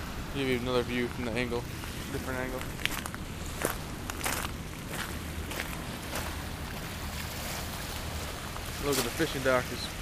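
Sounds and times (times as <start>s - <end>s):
river rushing: 0.0s - 10.0s
footsteps crunching on gravel: 2.5s - 6.9s.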